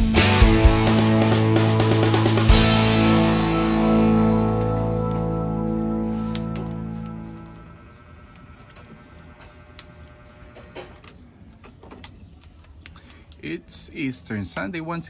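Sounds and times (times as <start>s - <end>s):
rock music guitar chord: 0.0s - 8.0s
wood fire crackling and popping: 1.3s - 15.0s.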